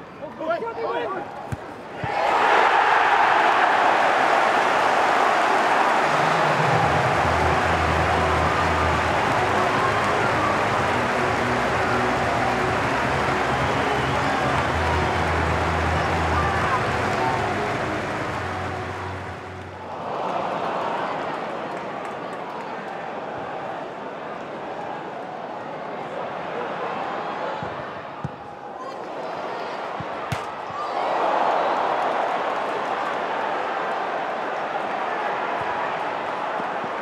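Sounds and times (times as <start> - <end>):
stadium crowd roaring: 0.0 - 37.0.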